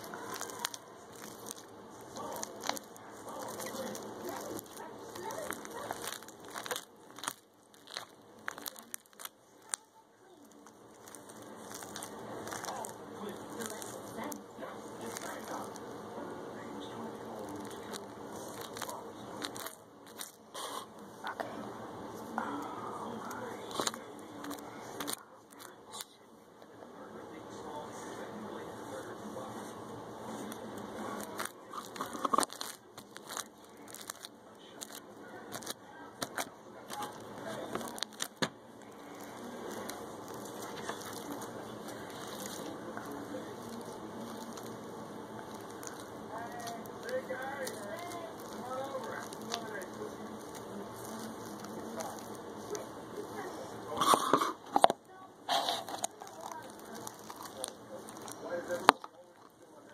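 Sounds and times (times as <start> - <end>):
slime popping and crackling: 0.0 - 16.1, 16.7 - 21.5, 22.4 - 26.2, 30.3 - 54.9, 55.5 - 59.9.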